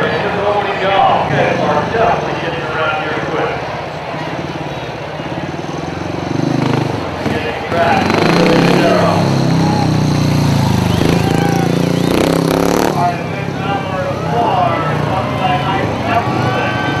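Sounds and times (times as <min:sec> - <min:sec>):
people's voices: 0:00.0 - 0:17.0
motorcycle engine revving: 0:01.0 - 0:17.0.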